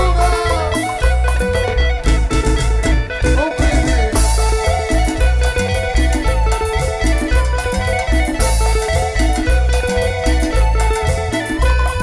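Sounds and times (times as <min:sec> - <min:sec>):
live band playing dance music: 0:00.0 - 0:12.0
repeating bass beat: 0:00.0 - 0:12.0.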